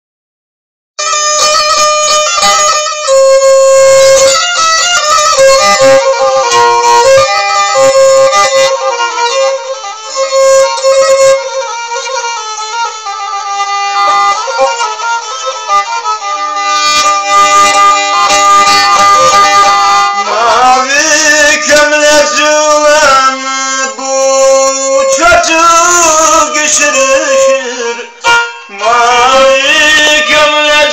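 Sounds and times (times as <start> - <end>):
bowed fiddle melody: 1.0 - 30.9.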